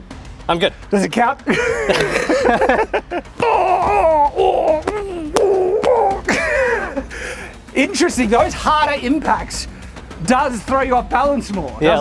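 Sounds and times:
men laughing: 1.5s - 7.7s
playful gliding vocal sounds: 3.3s - 7.0s.

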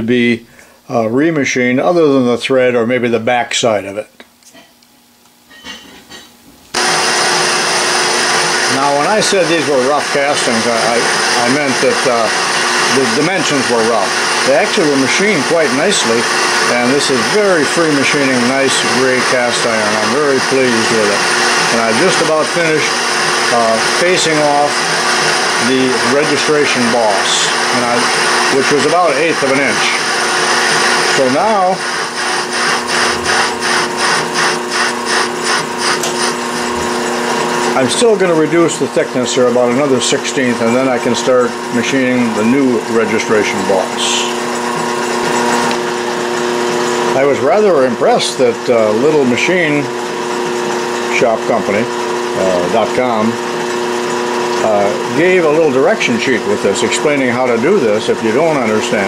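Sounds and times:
metal lathe whirring with hiss: 6.8s - 59.0s
cutting tool scraping metal: 27.5s - 36.9s.

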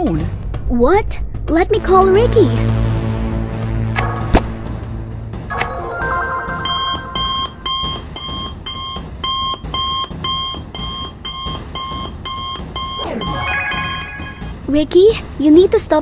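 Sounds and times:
background music: 0.0s - 10.0s, 12.8s - 16.0s
two-tone beeping ringtone: 5.5s - 14.6s.

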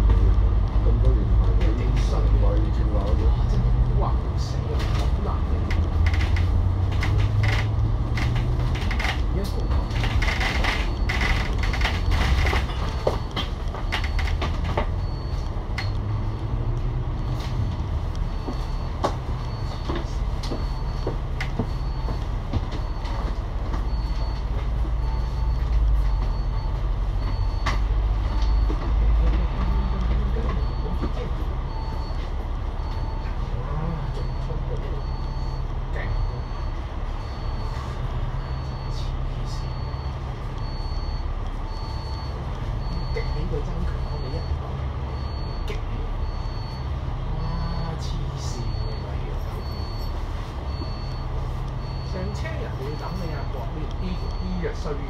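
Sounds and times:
bus diesel engine humming: 0.0s - 55.0s
faint high beeps: 28.3s - 55.0s.

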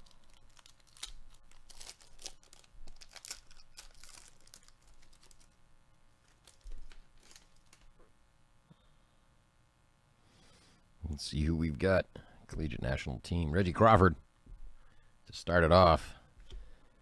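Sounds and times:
wrapper tearing and crinkling: 0.0s - 5.6s, 6.2s - 7.9s.

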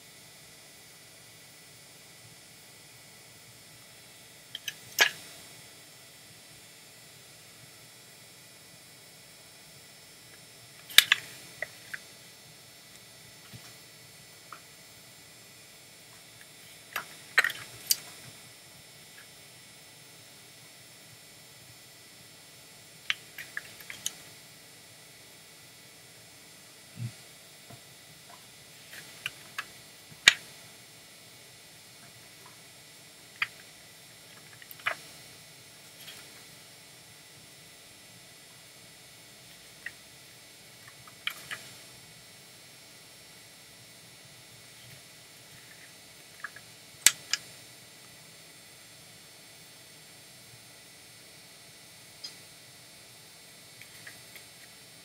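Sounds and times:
steady hiss: 0.0s - 55.0s.

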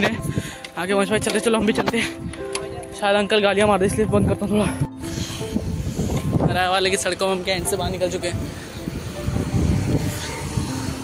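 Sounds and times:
wind rumble on microphone: 3.4s - 11.0s
motor scooter passing: 5.0s - 11.0s.

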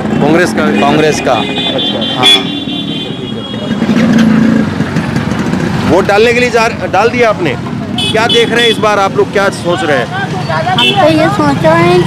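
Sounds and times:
street traffic: 0.0s - 12.0s
motorcycle engine running: 1.8s - 8.8s.

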